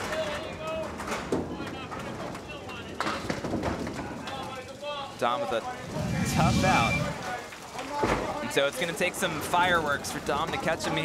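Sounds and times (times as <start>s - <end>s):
crowd murmur: 5.6s - 8.4s.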